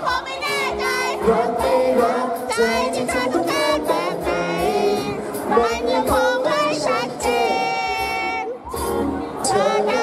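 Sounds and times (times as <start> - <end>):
backing music: 0.0 - 10.0
young man singing pop song: 0.0 - 10.0.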